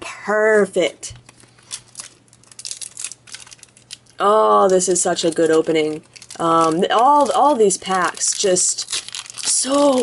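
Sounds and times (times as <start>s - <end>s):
wrapper crinkling and tearing: 1.3s - 10.0s.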